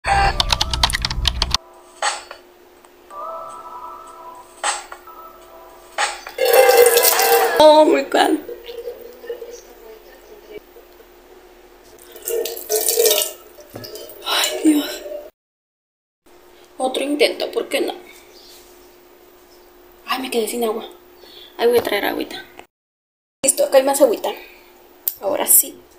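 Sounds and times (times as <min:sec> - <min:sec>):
rapid irregular loud clicks: 0:00.4 - 0:01.6
water poured and splashing: 0:06.4 - 0:07.6, 0:12.0 - 0:14.6.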